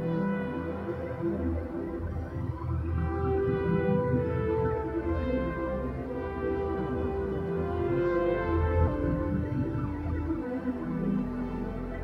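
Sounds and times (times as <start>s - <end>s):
long held synth tones: 0.0s - 12.0s
low bass drone: 0.0s - 12.0s.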